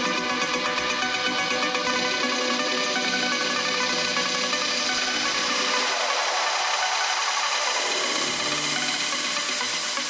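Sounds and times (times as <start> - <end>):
electronic dance music: 0.0 - 10.0
hissing noise sweep: 5.1 - 10.0.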